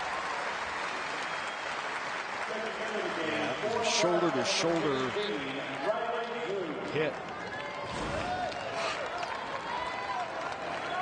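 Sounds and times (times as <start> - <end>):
man commentating: 2.4 - 7.2.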